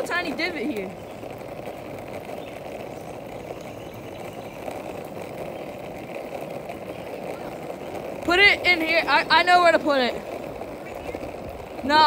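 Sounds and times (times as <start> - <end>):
skateboard wheels rolling on asphalt: 0.0 - 12.0.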